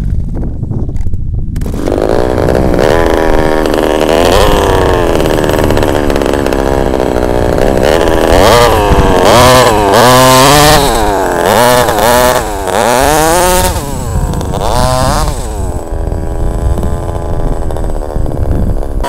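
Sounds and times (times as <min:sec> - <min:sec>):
two-stroke engine revving: 0:01.6 - 0:19.0.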